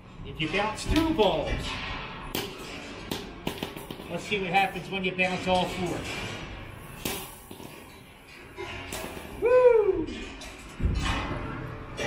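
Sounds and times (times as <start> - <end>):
balls knocking on floor: 3.1 - 4.3
man whooing: 9.4 - 10.2.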